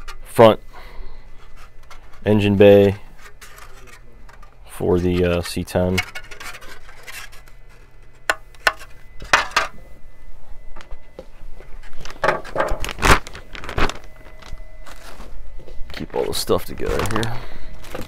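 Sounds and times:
plastic bag crinkling: 12.0s - 15.3s, 16.6s - 18.0s.

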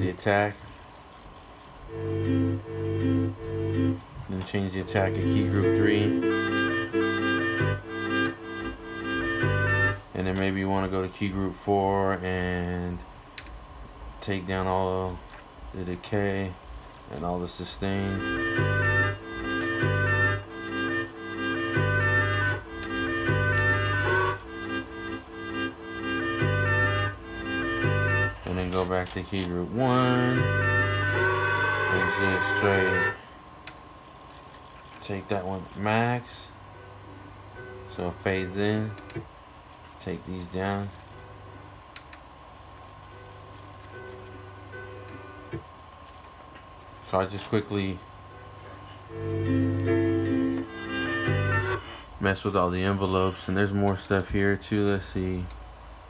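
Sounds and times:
steady low hum: 0.0s - 56.0s
sampler playing sustained tones: 16.8s - 28.5s, 29.9s - 33.3s
held synth chords: 18.0s - 28.5s, 30.3s - 33.2s.

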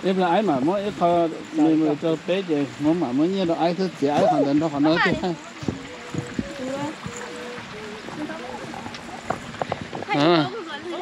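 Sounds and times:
footsteps on paved path: 0.0s - 11.0s
people talking quietly: 0.0s - 11.0s.

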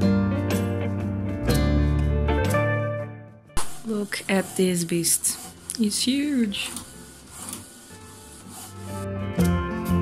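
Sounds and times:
inkjet printer scraping passes: 3.6s - 9.1s.

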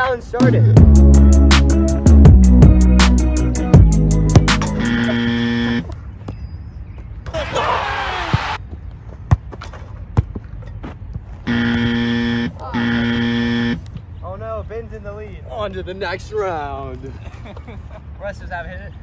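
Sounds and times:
electronic buzzer blasts: 4.5s - 5.9s, 11.5s - 13.9s.

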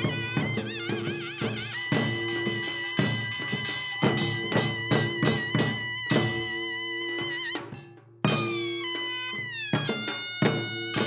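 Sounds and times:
sharp drum strokes: 0.0s - 11.0s.

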